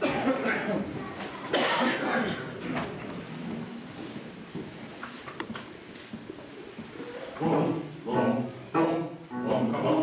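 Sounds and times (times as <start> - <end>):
coughs: 0.0 - 2.6
low murmuring: 6.1 - 10.0.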